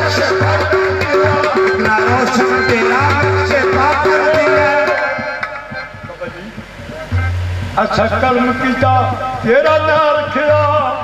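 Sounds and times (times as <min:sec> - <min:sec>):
man singing: 0:00.0 - 0:06.0, 0:07.9 - 0:11.0
hand drums: 0:00.0 - 0:11.0
harmonium: 0:00.0 - 0:11.0.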